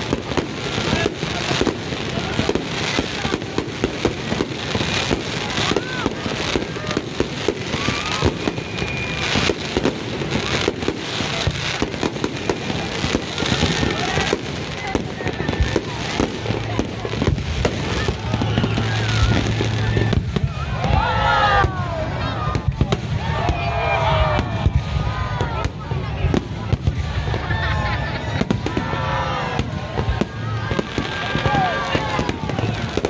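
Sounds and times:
fireworks bangs and pops: 0.0 - 33.0.

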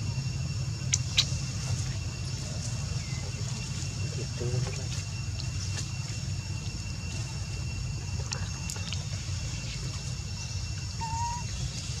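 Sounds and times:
whistle-like call: 11.0 - 11.5.

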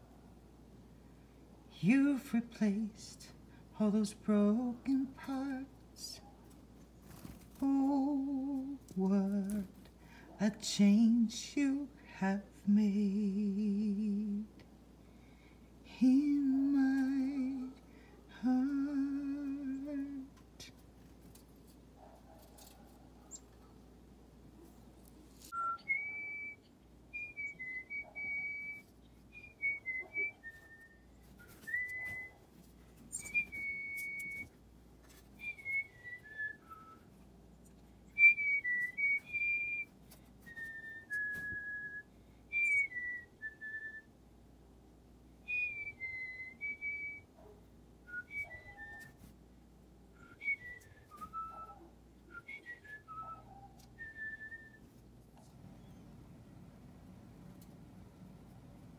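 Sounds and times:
person whistling a slow tune: 25.5 - 32.4, 35.4 - 37.1, 38.2 - 44.1, 45.5 - 47.3, 48.1 - 49.2, 50.2 - 54.9.

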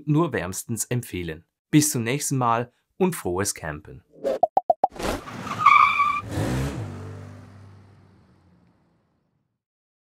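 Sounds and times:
engine driving off: 5.2 - 9.5.

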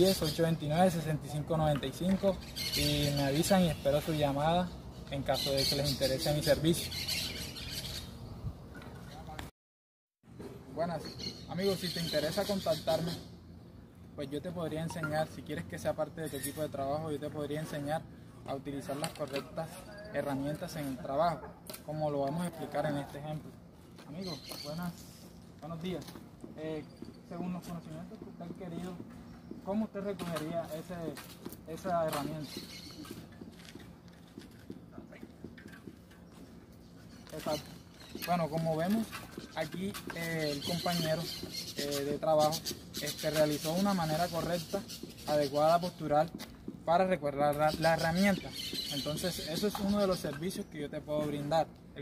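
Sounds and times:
birds chirping: 0.0 - 9.5, 10.4 - 52.0
footsteps on sandy concrete: 16.5 - 51.9.

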